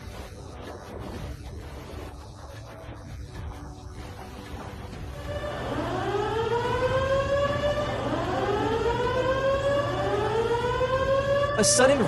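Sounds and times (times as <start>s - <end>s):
warning siren wailing: 5.1s - 12.0s.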